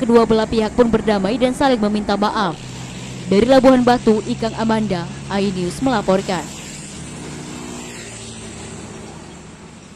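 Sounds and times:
motorcycles passing: 0.0s - 9.9s.

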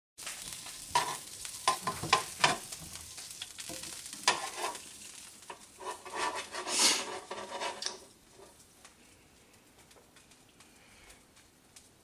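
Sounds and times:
sausages sizzling in a frying pan: 0.2s - 12.0s
metal tongs clicking against pan: 0.9s - 2.8s.

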